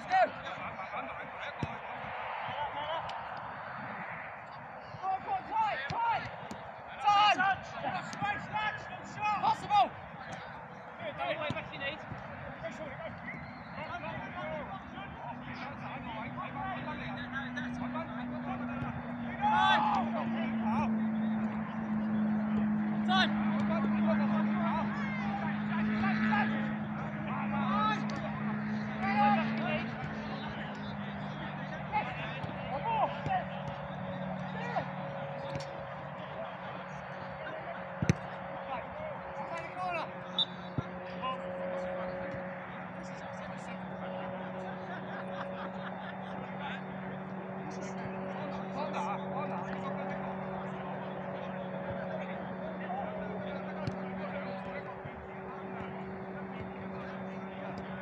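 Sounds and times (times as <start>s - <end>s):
players shouting: 0.0s - 58.0s.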